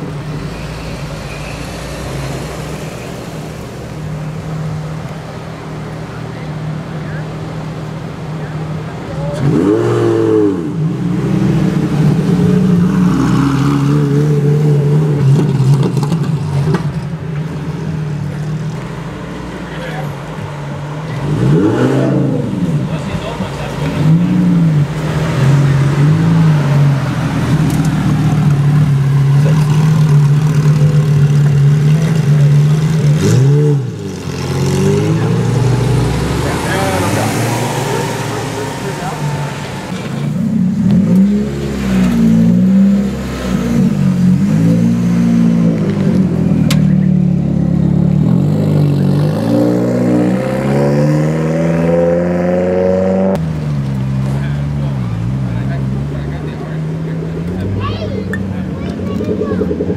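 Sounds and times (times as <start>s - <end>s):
sports car engine revving: 1.9s - 59.9s.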